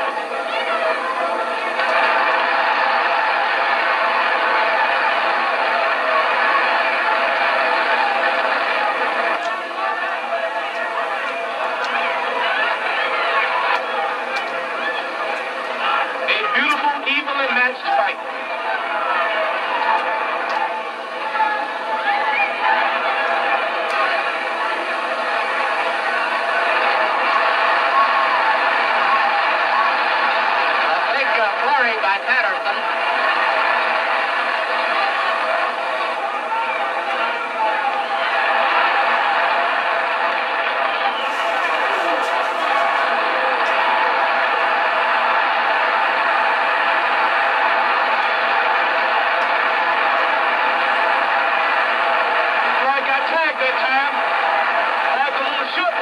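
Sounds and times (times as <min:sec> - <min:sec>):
crowd noise: 0:00.0 - 0:56.0
faint voices: 0:00.0 - 0:56.0.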